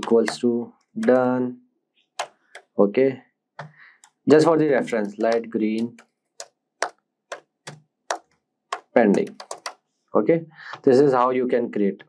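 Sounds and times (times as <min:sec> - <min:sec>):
computer keyboard keystrokes: 0:00.0 - 0:00.4, 0:01.0 - 0:01.4, 0:02.2 - 0:02.7, 0:03.6 - 0:09.8.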